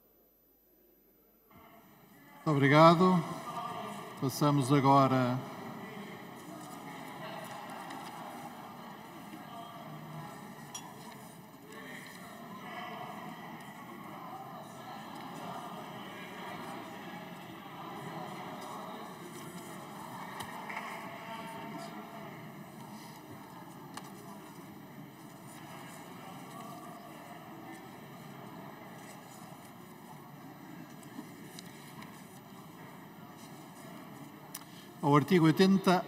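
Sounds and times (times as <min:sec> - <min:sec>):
murmur of many voices: 0:01.4 - 0:36.0.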